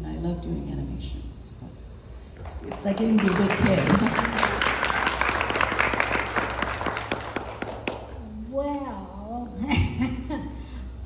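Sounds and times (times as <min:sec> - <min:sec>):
audience applause: 0:02.4 - 0:08.2.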